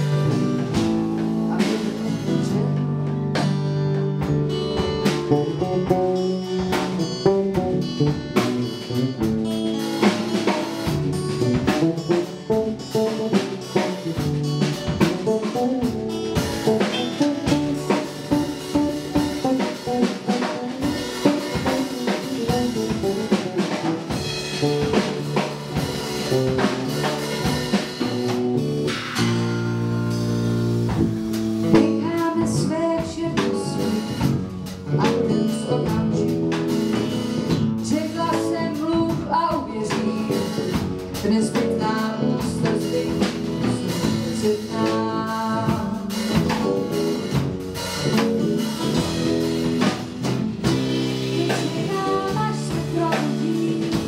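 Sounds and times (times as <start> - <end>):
drum kit beat: 0.0 - 54.0.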